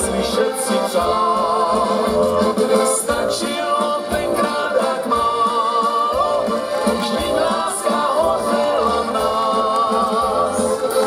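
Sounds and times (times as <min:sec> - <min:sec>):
accordion melody: 0:00.0 - 0:11.0.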